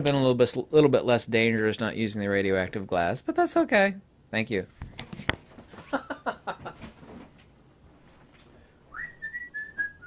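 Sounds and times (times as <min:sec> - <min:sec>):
person whistling: 0:08.9 - 0:10.0.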